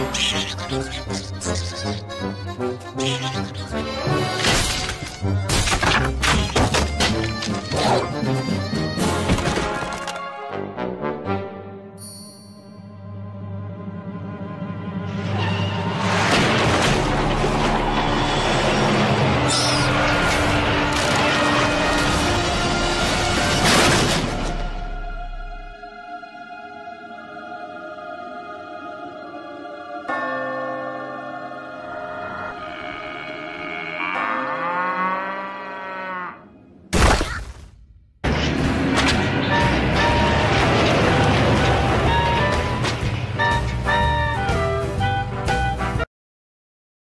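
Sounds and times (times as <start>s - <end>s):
cartoon music: 0.0s - 5.5s, 6.1s - 9.3s, 43.4s - 46.0s
sharp crashes: 15.8s - 18.1s
cartoon cow mooing: 32.5s - 36.6s
rumbling truck din: 38.2s - 43.9s.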